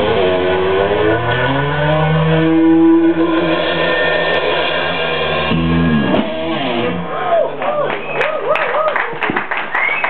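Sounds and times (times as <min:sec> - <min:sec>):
electric guitar sliding notes: 0:00.0 - 0:07.2.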